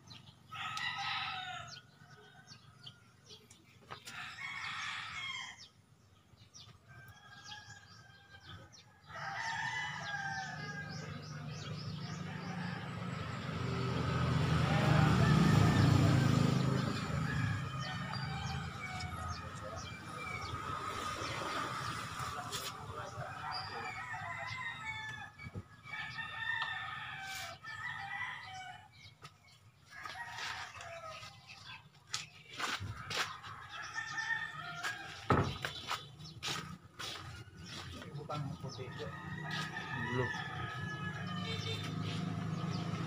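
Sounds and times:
rooster crowing: 0:00.5 - 0:03.0, 0:04.1 - 0:05.7, 0:06.9 - 0:29.1, 0:29.9 - 0:31.6, 0:33.1 - 0:35.6, 0:38.8 - 0:43.0.

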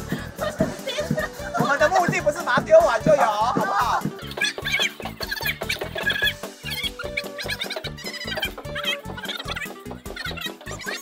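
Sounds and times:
upbeat background music: 0:00.0 - 0:11.0
high chirping figures: 0:04.2 - 0:11.0.

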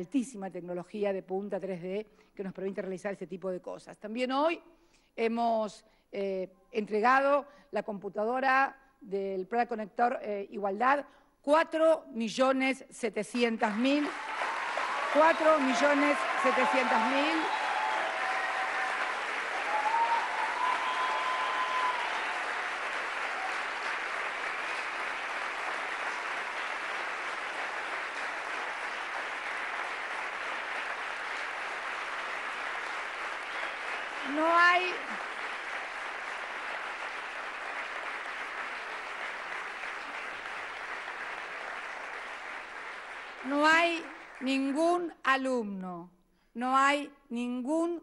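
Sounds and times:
audience applauding: 0:13.6 - 0:44.5
loud shout: 0:14.1 - 0:24.0.

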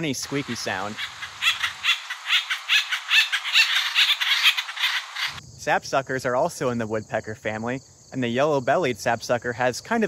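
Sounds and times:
woodpecker squeaky calls: 0:00.3 - 0:05.4.

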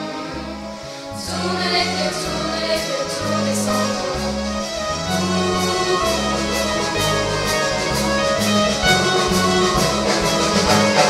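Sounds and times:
live band playing pop: 0:01.3 - 0:11.0.

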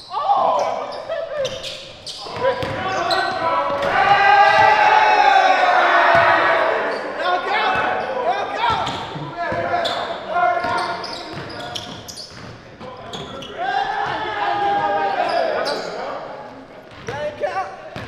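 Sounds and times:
players calling and chattering: 0:00.0 - 0:18.0.

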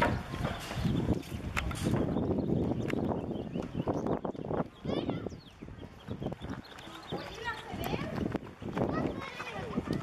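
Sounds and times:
people talking indistinctly: 0:03.6 - 0:10.0.

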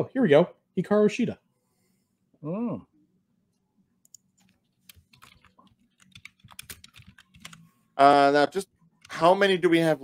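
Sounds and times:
computer keyboard typing: 0:04.0 - 0:07.6.

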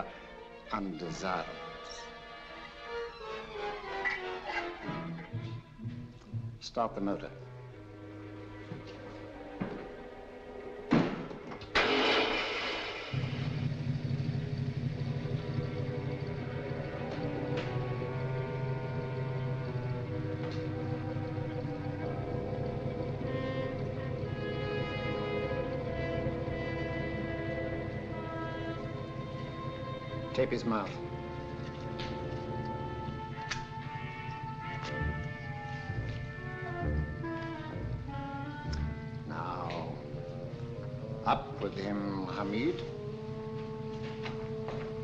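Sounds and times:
background film music: 0:00.0 - 0:45.0
car engine starting and idling: 0:00.9 - 0:45.0.

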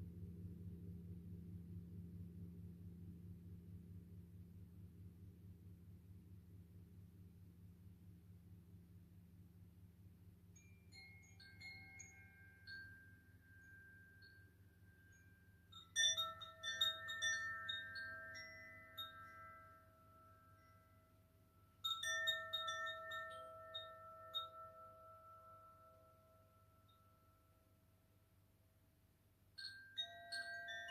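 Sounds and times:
faint low hum: 0:00.0 - 0:30.9
chimes tinkling: 0:10.6 - 0:27.8, 0:29.6 - 0:30.9.

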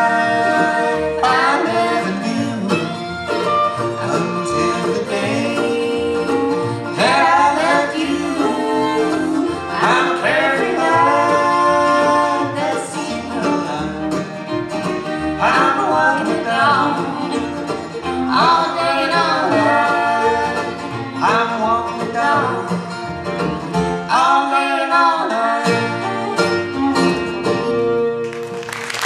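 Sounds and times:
mandolins: 0:00.0 - 0:28.7
acoustic guitars: 0:00.0 - 0:29.0
fiddle: 0:00.0 - 0:29.0
upright bass: 0:00.0 - 0:29.0.

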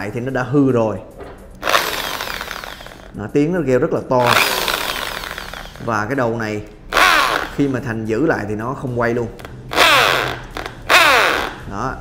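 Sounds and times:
impact drill running loud: 0:01.6 - 0:03.1, 0:04.2 - 0:05.9, 0:06.9 - 0:07.7, 0:09.7 - 0:11.6.

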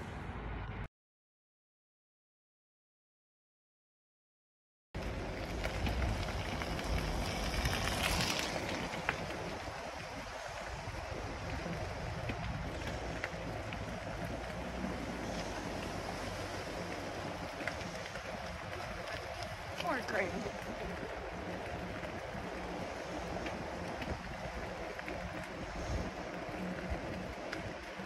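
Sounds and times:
bike tyres rolling on wet pavement: 0:05.0 - 0:28.0
wind on microphone: 0:05.0 - 0:28.0
faint ticks: 0:23.2 - 0:28.0.

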